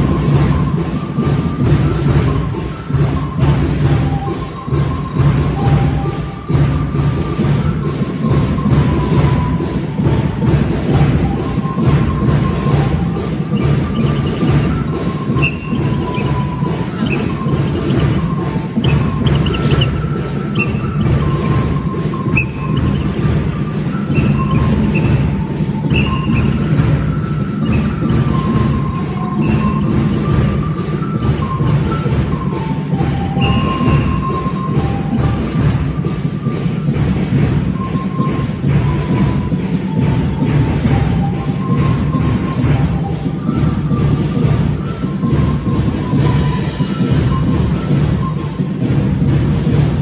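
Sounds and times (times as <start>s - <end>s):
dance music with heavy drumbeat: 0.0s - 50.0s
thin sustained melody: 11.0s - 36.3s.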